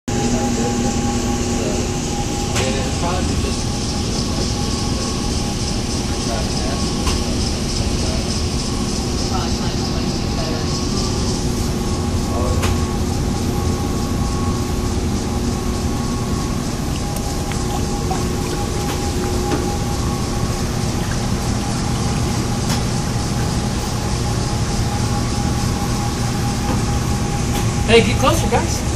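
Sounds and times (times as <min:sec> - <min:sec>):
mechanical hum: 0:00.1 - 0:28.9.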